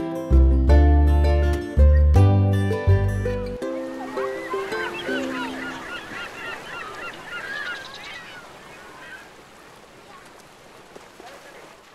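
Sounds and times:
flock of birds calling: 3.8 - 9.8.

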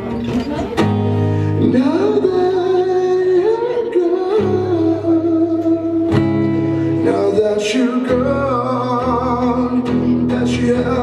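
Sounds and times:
strummed acoustic guitar: 0.0 - 11.0
man singing: 1.5 - 11.0.

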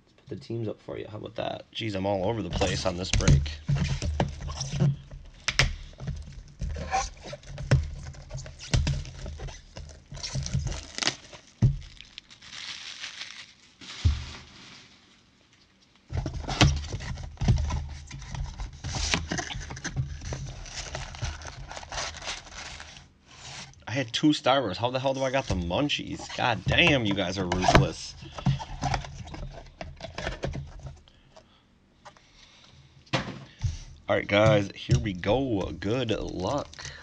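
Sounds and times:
wrapping crinkling and tearing: 6.2 - 16.1, 18.0 - 23.8.

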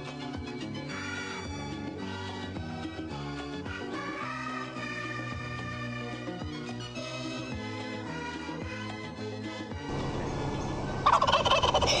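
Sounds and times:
turkey gobbling: 9.9 - 12.0.

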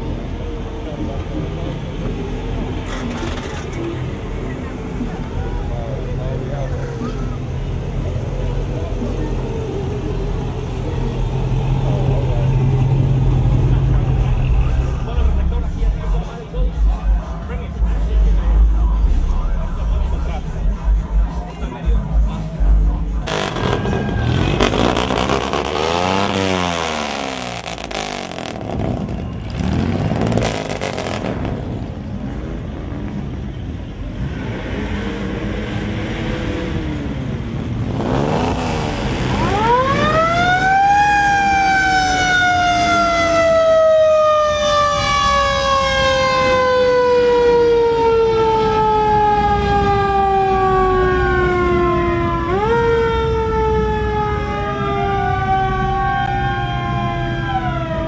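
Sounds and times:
vehicle noise: 0.0 - 58.0.

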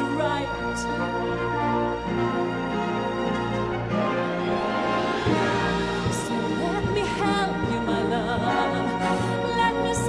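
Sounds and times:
orchestra playing held chords: 0.0 - 10.0
trumpet playing: 0.0 - 10.0.

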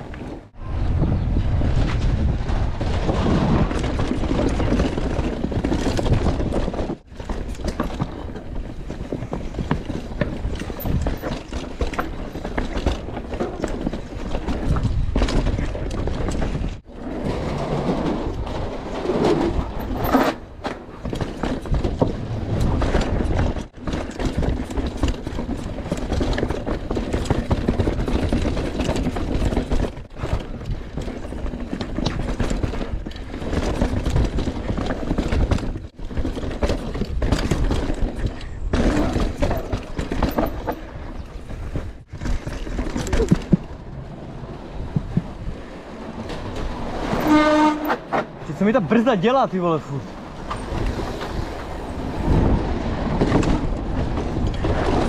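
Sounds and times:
wind on microphone: 0.0 - 7.1, 50.1 - 55.0
bike knocking and rattling: 0.0 - 55.0
bike tyres rumbling over dirt: 0.0 - 55.0.

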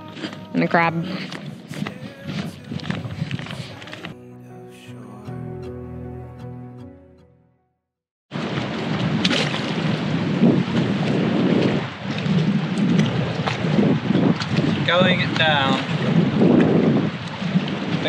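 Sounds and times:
wind buffeting microphone: 0.0 - 4.1, 8.4 - 18.0
background music: 0.0 - 7.8.

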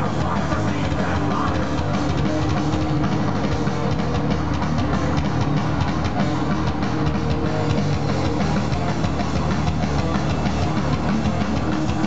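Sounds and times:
heavy metal music: 0.0 - 12.0.

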